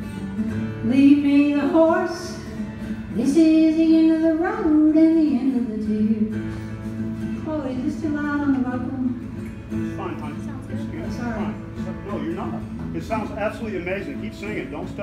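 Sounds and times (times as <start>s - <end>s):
acoustic guitar: 0.0s - 15.0s
woman singing: 0.8s - 2.5s, 3.1s - 6.4s, 7.4s - 9.4s.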